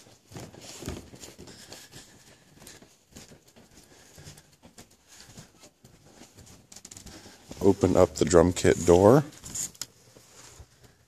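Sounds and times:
faint footsteps: 0.0 - 11.0.

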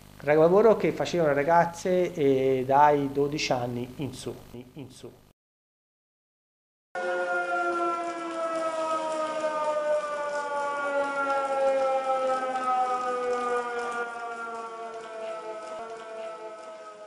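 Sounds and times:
air-raid siren wailing: 7.0 - 17.0.

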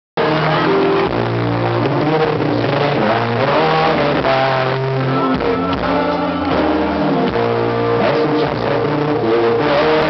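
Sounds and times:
live pop-rock band playing: 0.2 - 10.0.

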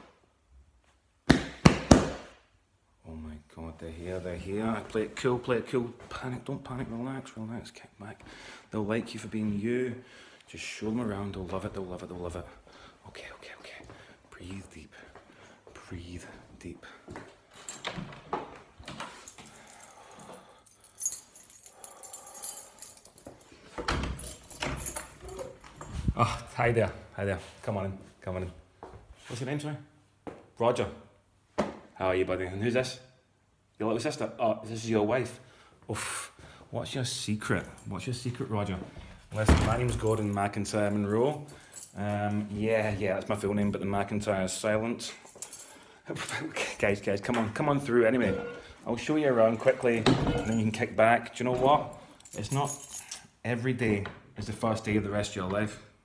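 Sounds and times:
door thumping open: 39.4 - 40.0.

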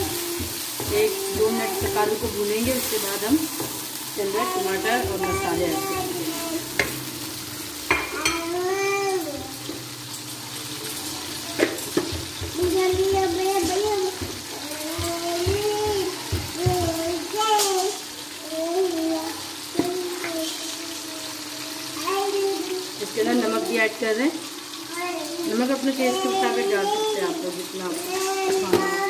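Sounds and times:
child talking: 0.0 - 2.3, 4.3 - 6.7, 8.1 - 9.6, 11.1 - 11.7, 12.4 - 23.8, 24.9 - 29.0
potatoes and onions frying in oil: 0.0 - 29.0.

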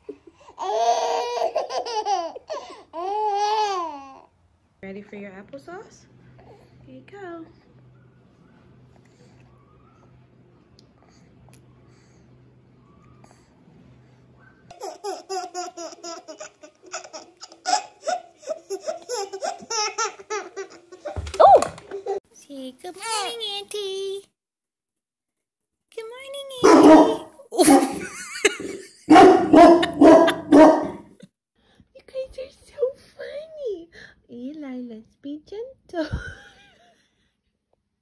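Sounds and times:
babies giggling: 0.0 - 4.1, 14.7 - 22.2
loud bursts of baby laughter: 0.6 - 4.1.

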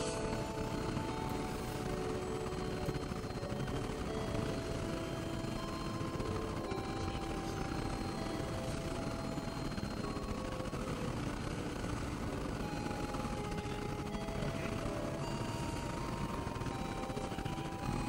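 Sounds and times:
experimental synthesizer noise music: 0.0 - 18.0.

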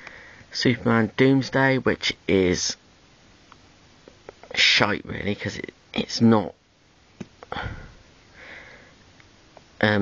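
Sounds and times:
soft breath: 0.0 - 0.5, 7.5 - 9.1.

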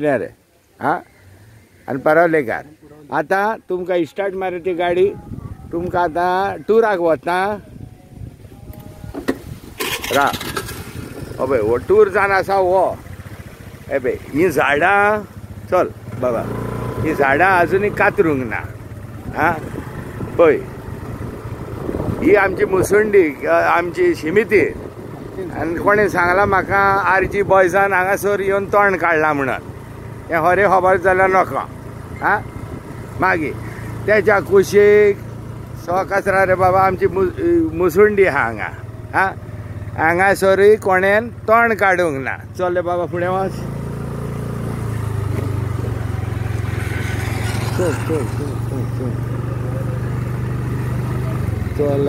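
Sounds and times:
vehicle engine rumbling: 0.0 - 52.0
person talking: 22.2 - 29.7.

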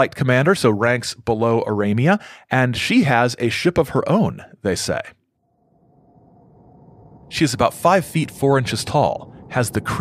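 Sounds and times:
faint steady tone hum: 5.3 - 10.0.

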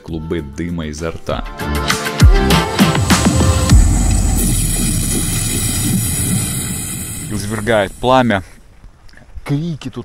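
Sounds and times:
high flame hiss: 2.4 - 8.6
rushing roar with low rumble: 2.5 - 8.1.

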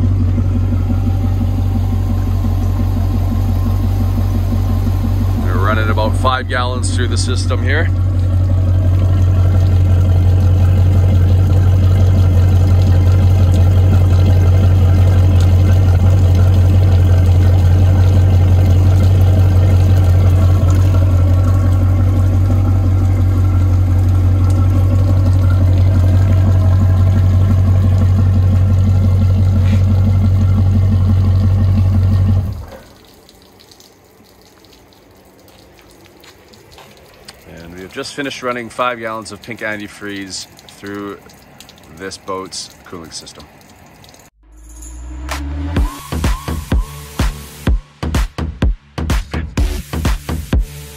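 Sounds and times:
boat engine idling: 0.0 - 44.4
water splashing from exhaust: 0.0 - 44.4, 45.2 - 50.9
faint dripping: 0.4 - 44.4.

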